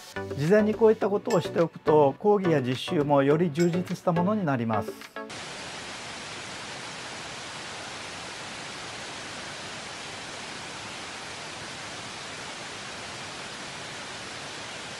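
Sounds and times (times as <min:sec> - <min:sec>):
television static hiss: 0:05.3 - 0:14.9.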